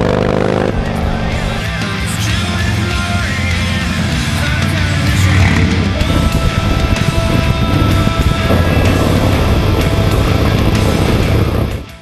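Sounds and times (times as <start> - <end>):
loud music soundtrack: 0.0 - 12.0.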